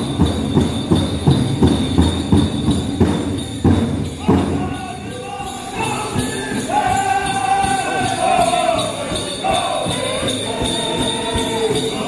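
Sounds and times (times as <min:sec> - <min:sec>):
drum struck in steady beat: 0:00.0 - 0:12.0
jingling bells: 0:00.0 - 0:12.0.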